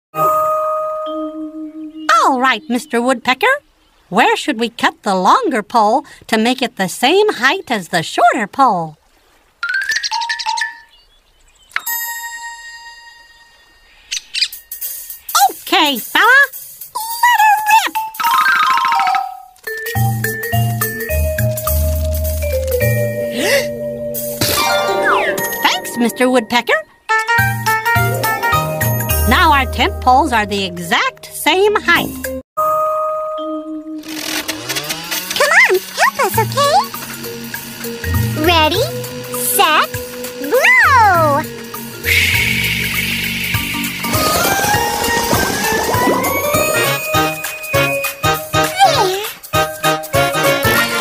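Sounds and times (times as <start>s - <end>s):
cartoon music with pitch glides: 0.2s - 2.9s, 17.0s - 51.0s.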